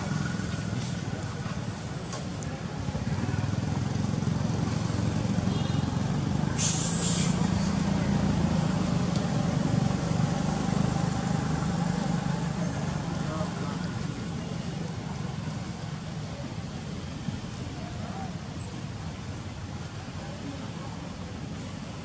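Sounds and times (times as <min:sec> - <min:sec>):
vehicle engine rumble: 0:00.0 - 0:22.0
short hiss: 0:06.5 - 0:07.9.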